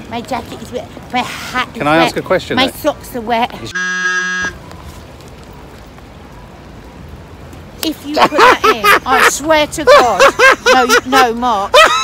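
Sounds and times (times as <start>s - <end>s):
rain hissing: 0.0s - 11.7s
harsh low buzzer tone: 3.7s - 4.6s.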